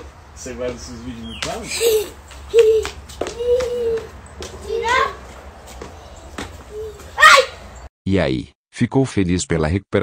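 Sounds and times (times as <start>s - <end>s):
child calling out: 1.8s - 5.2s, 6.7s - 7.6s.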